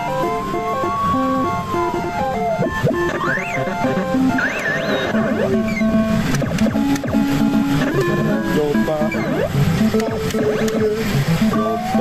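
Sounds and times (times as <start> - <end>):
electronic retro game music: 0.0 - 12.0.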